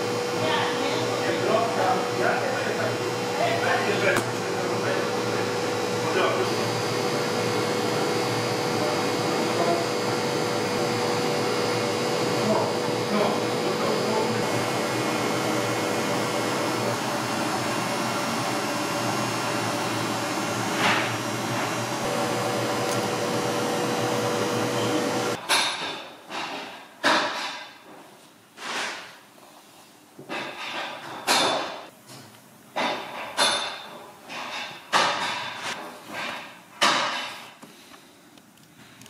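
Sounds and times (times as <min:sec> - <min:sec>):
machine whirring drone: 0:00.0 - 0:25.4.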